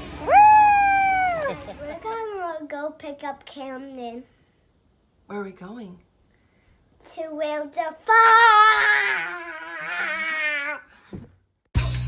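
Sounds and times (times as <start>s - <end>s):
child shouting: 7.6s - 10.9s.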